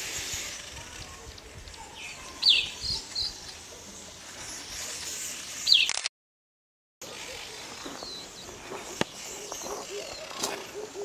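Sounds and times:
faint outdoor background noise: 0:00.0 - 0:06.1, 0:07.0 - 0:11.0
bird chirping: 0:01.3 - 0:06.0, 0:07.1 - 0:11.0.

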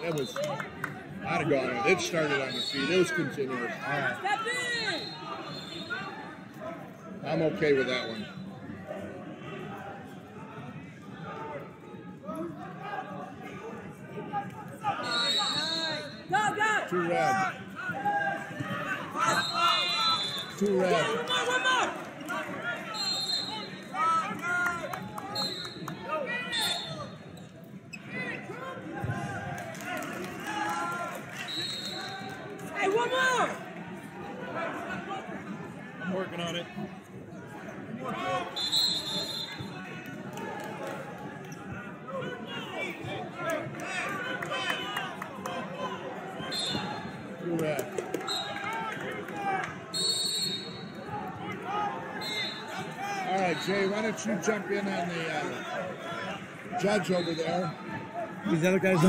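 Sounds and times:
overlapping voices: 0:39.0 - 0:50.1.

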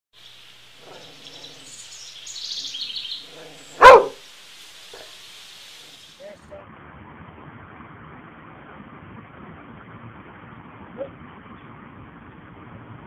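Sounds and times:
birds chirping faintly: 0:00.2 - 0:06.4
dog barking: 0:00.8 - 0:01.7, 0:03.2 - 0:04.2.

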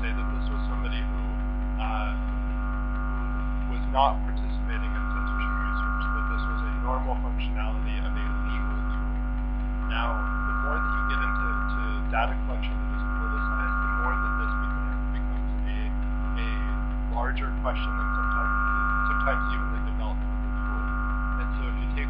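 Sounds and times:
faint indistinct voices: 0:00.0 - 0:02.2, 0:03.0 - 0:09.2, 0:09.8 - 0:22.0
mains hum: 0:00.0 - 0:22.0.

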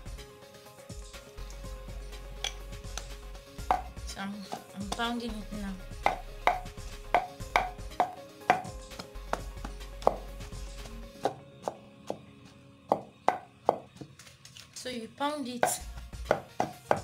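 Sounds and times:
pestle pounding in a mortar: 0:03.6 - 0:04.0, 0:06.0 - 0:12.2, 0:15.6 - 0:17.0.

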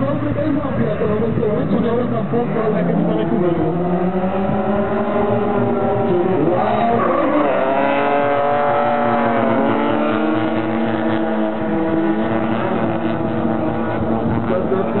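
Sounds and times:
car engines revving high: 0:00.0 - 0:15.0
spinning tyres rushing: 0:00.0 - 0:15.0.

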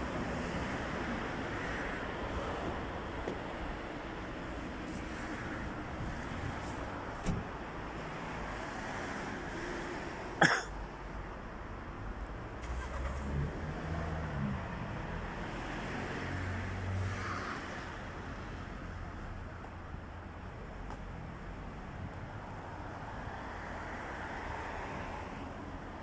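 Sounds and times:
city street traffic: 0:00.0 - 0:26.0.

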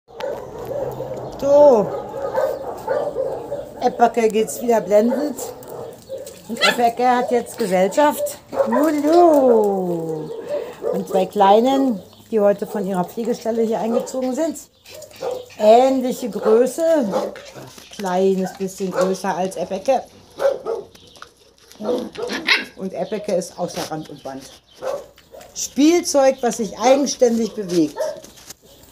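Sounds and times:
puppy barking: 0:00.1 - 0:09.6, 0:10.2 - 0:11.3, 0:13.8 - 0:14.3, 0:14.9 - 0:17.7, 0:18.4 - 0:19.2, 0:20.4 - 0:21.0, 0:21.8 - 0:23.3, 0:24.8 - 0:25.6, 0:27.5 - 0:28.3
puppies playing: 0:00.1 - 0:28.9
small dogs yipping and whimpering: 0:06.1 - 0:06.9.

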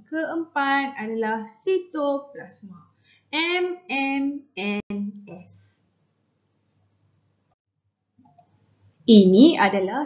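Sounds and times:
faint clicks: 0:08.2 - 0:08.6.

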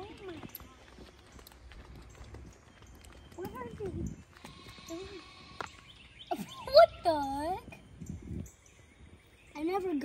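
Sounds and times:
footsteps on wooden boardwalk: 0:00.0 - 0:06.3.

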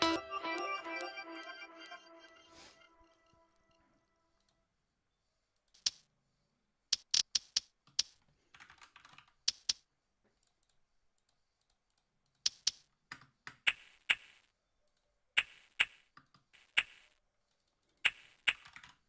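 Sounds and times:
computer keyboard clicking: 0:07.0 - 0:09.8, 0:10.4 - 0:13.8, 0:17.5 - 0:19.0.

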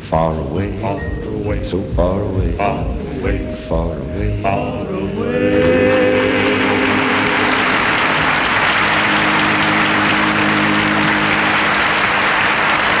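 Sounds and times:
band holding low chord: 0:00.0 - 0:13.0
audience applauding: 0:05.5 - 0:13.0.

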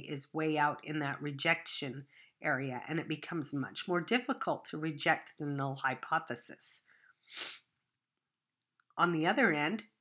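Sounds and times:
person sharp in-breath: 0:06.9 - 0:07.7.

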